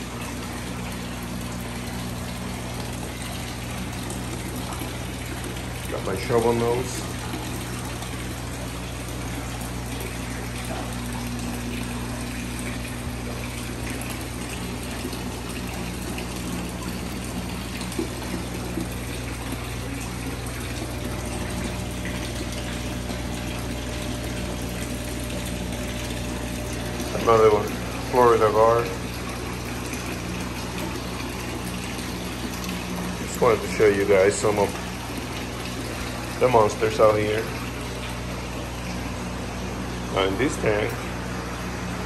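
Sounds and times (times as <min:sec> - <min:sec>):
steady low hum: 0:00.0 - 0:42.0
water pouring and splashing into tank: 0:00.0 - 0:42.0.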